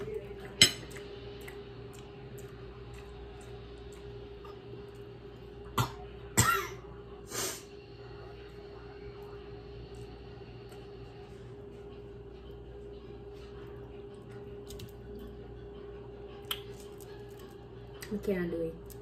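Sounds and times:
woman coughing: 5.8 - 6.9.

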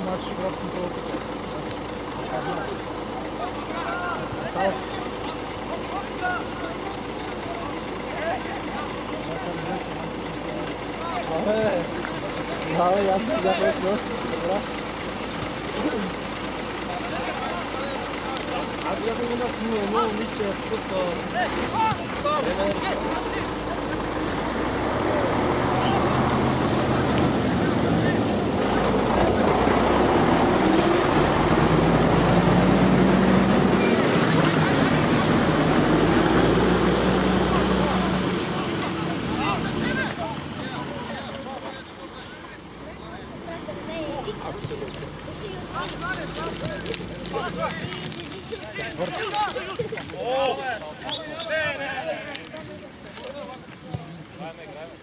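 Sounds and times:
engine passing by: 0.0 - 49.8
people shouting: 21.4 - 23.3.

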